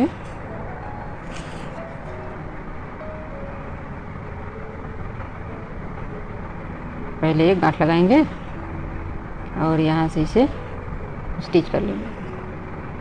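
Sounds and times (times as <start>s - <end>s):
low background rumble and hiss: 0.0s - 13.0s.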